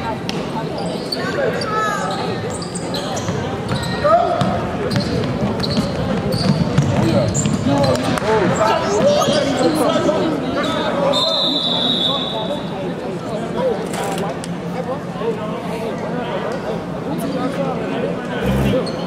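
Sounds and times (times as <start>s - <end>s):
indistinct voices: 18.2s - 19.0s.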